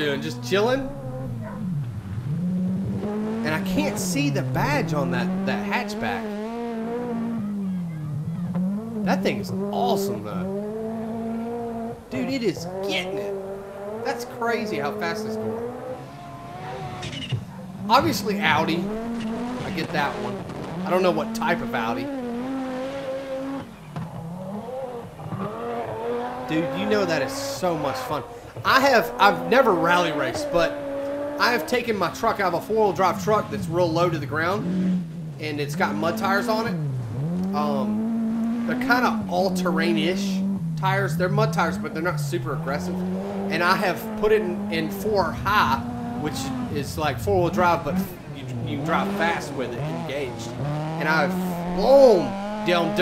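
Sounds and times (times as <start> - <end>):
rally car engine accelerating: 0.0 - 53.0.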